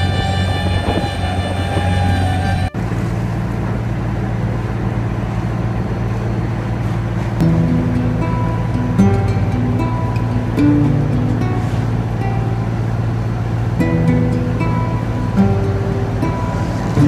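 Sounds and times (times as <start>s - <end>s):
boat engine droning: 0.0s - 17.0s
wash of noise: 0.0s - 17.0s
background music with strings: 7.4s - 17.0s.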